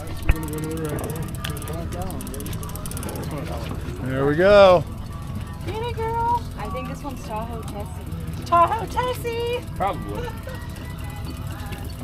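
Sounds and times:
people talking: 0.0s - 4.8s, 5.6s - 10.6s
boat engine running: 0.0s - 12.0s.

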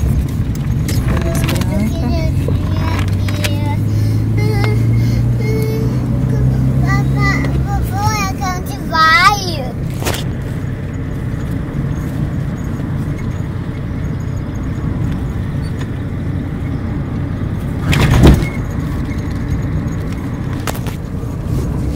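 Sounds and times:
car engine and road rumble: 0.0s - 21.9s.

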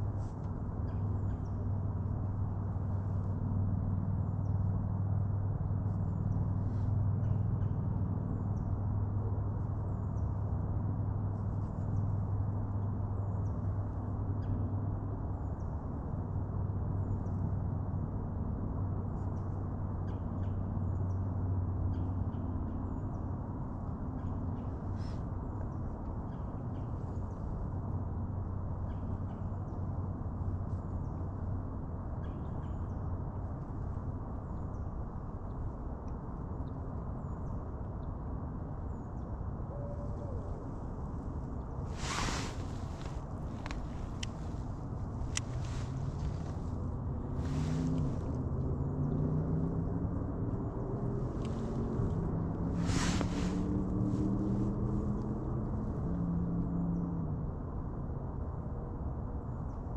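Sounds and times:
steady rumble: 40.3s - 49.1s, 50.2s - 56.1s.

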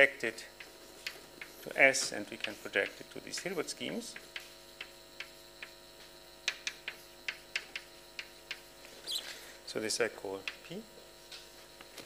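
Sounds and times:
steady hum: 0.0s - 12.0s
chalk tapping on blackboard: 0.6s - 5.8s.

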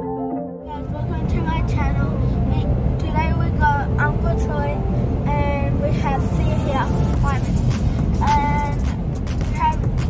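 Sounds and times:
child talking: 0.7s - 7.5s, 8.2s - 8.9s, 9.5s - 10.0s
car road and engine noise: 0.7s - 10.0s.

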